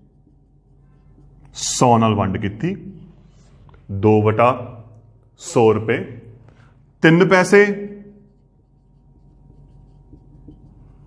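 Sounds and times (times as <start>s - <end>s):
marker writing on whiteboard: 0.0s - 1.8s, 8.0s - 11.0s.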